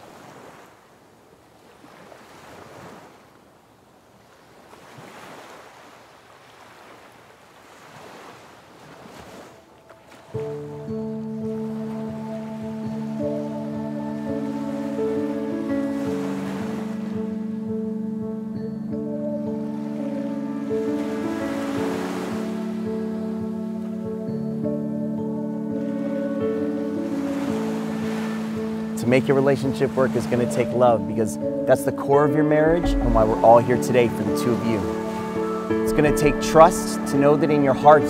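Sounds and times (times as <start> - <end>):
soft sustained chord music: 9.6 - 38.0
ocean surf breaking: 20.7 - 23.3, 32.7 - 38.0.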